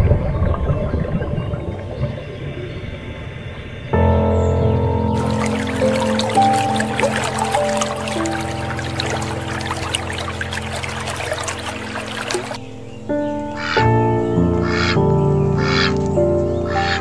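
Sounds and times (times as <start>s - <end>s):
crackling trickling noise: 0.0s - 4.1s, 5.0s - 13.8s
music of sustained notes: 0.0s - 17.0s.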